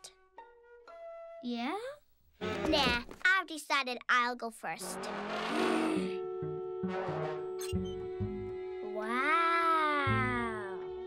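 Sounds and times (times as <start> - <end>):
held musical chords: 4.8 - 9.0.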